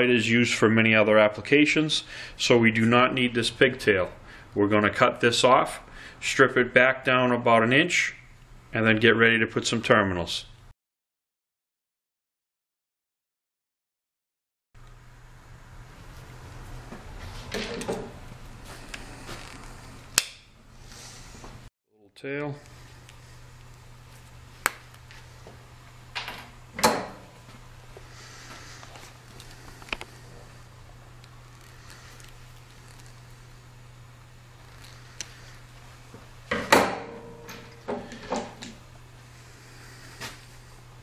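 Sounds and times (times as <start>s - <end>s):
steady low hum: 0.0s - 10.7s, 14.8s - 41.0s
wire cutters snipping wire: 20.1s - 20.4s.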